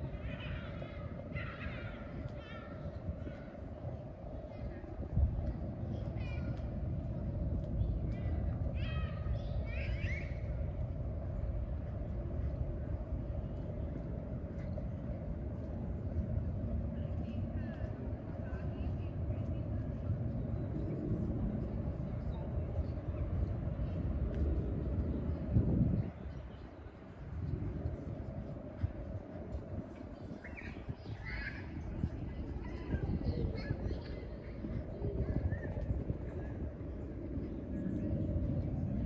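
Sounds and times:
constant hum: 0.0 - 39.0
low outdoor rumble: 0.0 - 39.0.

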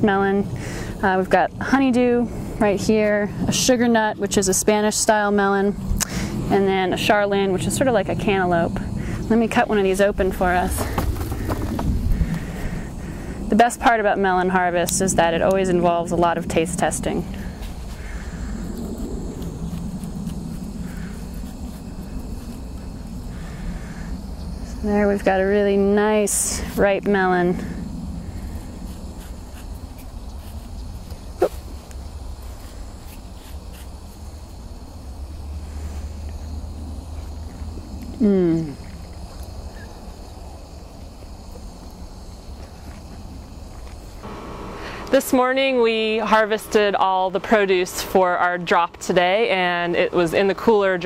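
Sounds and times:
low outdoor rumble: 0.0 - 51.0
steady hum: 0.0 - 51.0.

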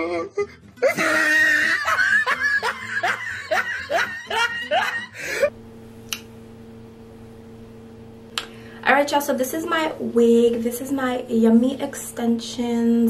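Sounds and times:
woman laughing: 0.0 - 5.5
faint steady hum: 3.0 - 13.0
click: 6.1 - 6.3.

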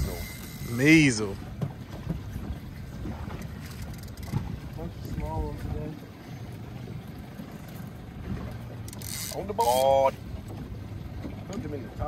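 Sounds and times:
wind rumbling on microphone: 0.0 - 0.7, 1.4 - 6.0
outboard boat motor: 0.0 - 12.0.

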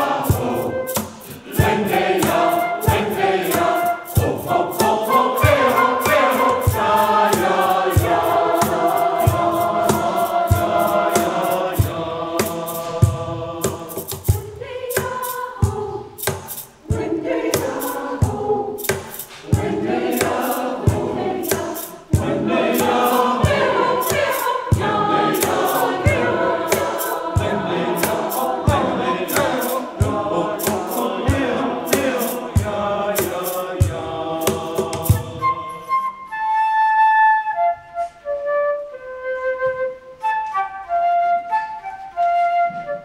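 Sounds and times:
sharp percussive hits: 0.0 - 35.4
choir singing in parts: 0.0 - 36.4.

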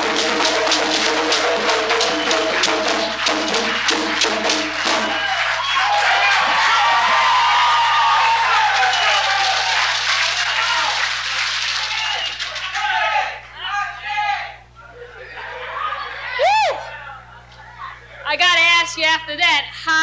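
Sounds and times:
hand drums playing rhythm: 0.0 - 5.2
audience applause and cheering: 0.0 - 13.4.

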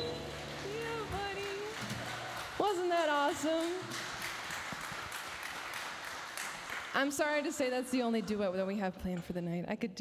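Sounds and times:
audience applauding: 0.0 - 7.1
woman's voice: 0.6 - 1.8, 2.6 - 3.8, 7.0 - 10.0.

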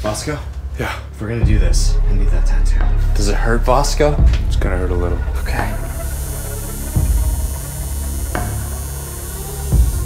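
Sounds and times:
tattoo machine buzzing: 5.8 - 10.0.

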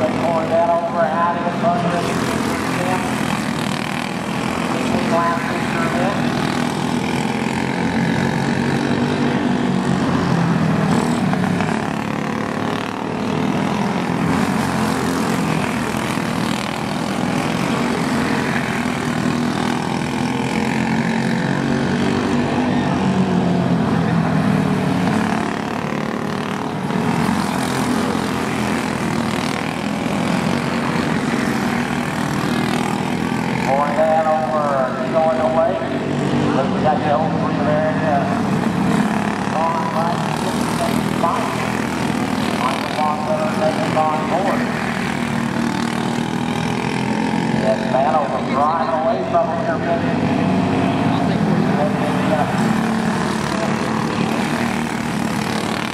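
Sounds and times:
go-kart engines droning: 0.0 - 55.9
kart engine passing close: 0.0 - 55.9.

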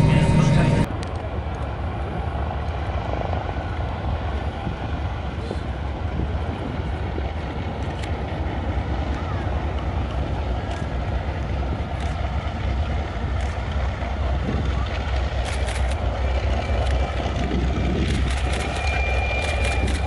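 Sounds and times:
distant propeller aircraft drone: 0.0 - 20.0.

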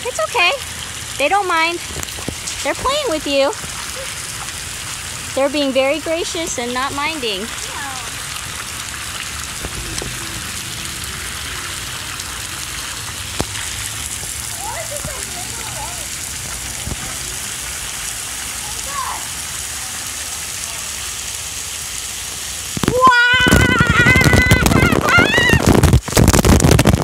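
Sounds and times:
water jets spraying onto concrete: 0.0 - 27.0.

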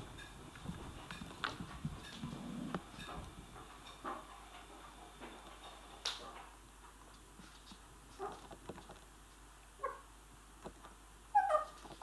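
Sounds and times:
puppy whining: 11.3 - 11.9.

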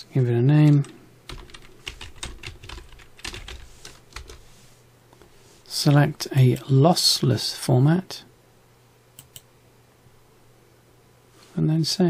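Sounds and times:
typing on computer keyboard: 0.7 - 4.4, 9.2 - 9.4.

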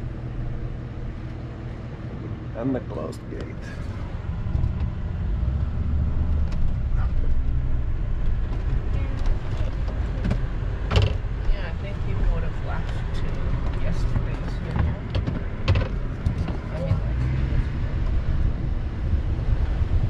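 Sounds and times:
vehicle engine and tyres rumbling: 0.0 - 20.0
clicks and knocks from bumps: 14.7 - 16.6.

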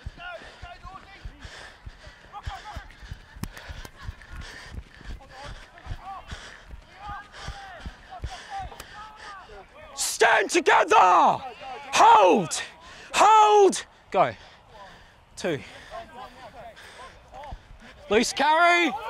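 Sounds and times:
running footsteps on grass: 0.0 - 10.0
distant shouts: 0.0 - 19.0.

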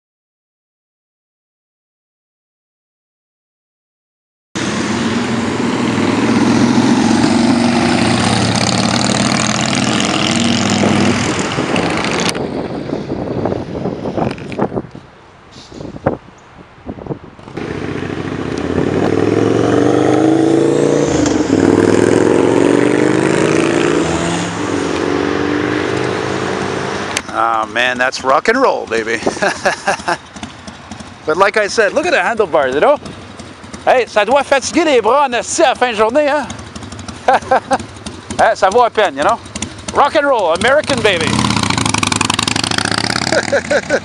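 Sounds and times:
motorcycle engines revving: 4.6 - 12.9, 17.4 - 44.0
street noise: 4.6 - 44.0.

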